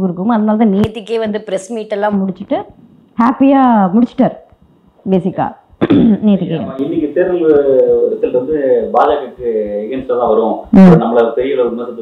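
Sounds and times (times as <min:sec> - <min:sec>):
people talking: 0:00.0 - 0:04.5, 0:05.1 - 0:12.0
throat clearing: 0:05.8 - 0:06.2.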